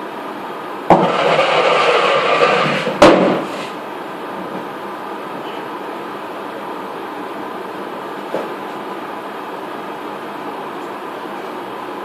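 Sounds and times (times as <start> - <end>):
steady background hum: 0.0 - 12.0
sharp knock: 0.9 - 3.6.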